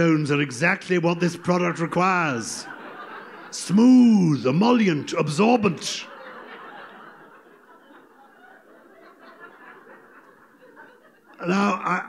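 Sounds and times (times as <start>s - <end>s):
audience laughter: 0.9s - 12.0s.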